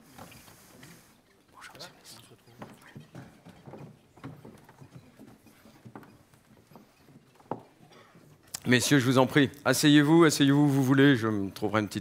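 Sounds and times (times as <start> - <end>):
footsteps on wooden floor: 2.3 - 8.6.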